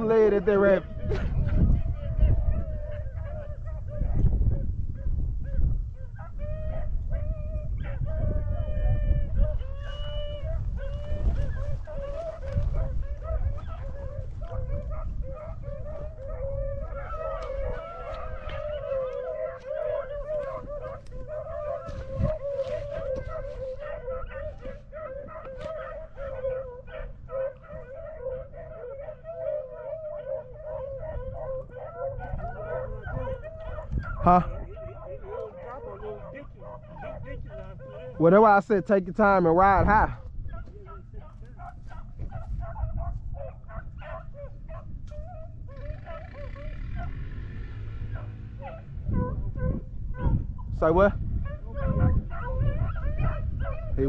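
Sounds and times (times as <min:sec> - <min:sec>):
pack of dogs baying: 0:00.0 - 0:54.0.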